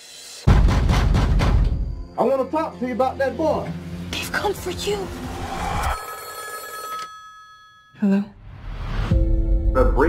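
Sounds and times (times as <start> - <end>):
telephone ringing: 5.8 - 8.0.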